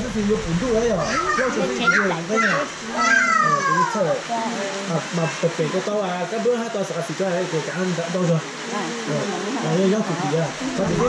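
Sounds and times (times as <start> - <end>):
people talking: 0.0 - 11.0
child's voice: 0.9 - 4.2.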